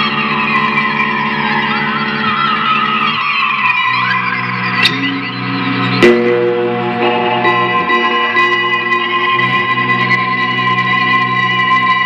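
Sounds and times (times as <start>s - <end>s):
high squealing guitar tones: 0.1s - 12.0s
distorted electric guitar noise: 3.9s - 12.0s
sharp guitar attack: 4.8s - 10.8s
low sustained drone: 5.0s - 11.7s.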